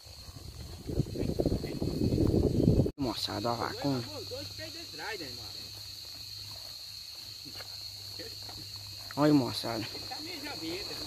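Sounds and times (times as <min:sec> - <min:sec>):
insects chorus: 0:00.0 - 0:11.0.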